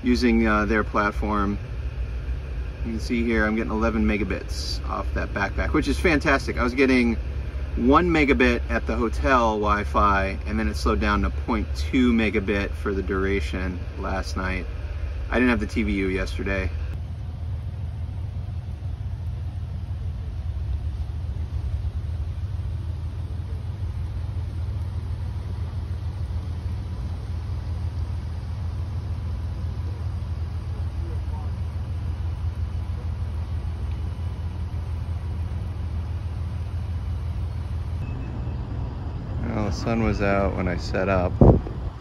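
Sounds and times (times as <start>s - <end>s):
low rumble: 0.0s - 42.0s.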